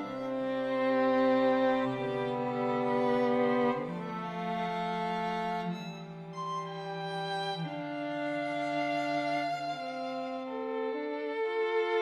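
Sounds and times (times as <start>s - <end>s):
string quartet playing chords: 0.0s - 12.0s.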